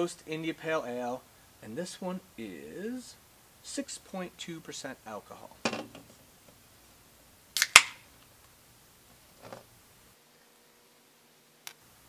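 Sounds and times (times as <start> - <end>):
beer can opening crack: 7.6 - 8.0.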